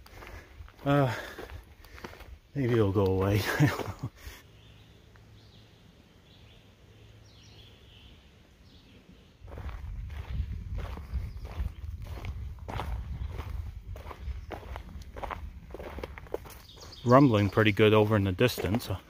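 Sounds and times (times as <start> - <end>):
footsteps on dirt trail: 0.0 - 4.4, 9.4 - 19.0.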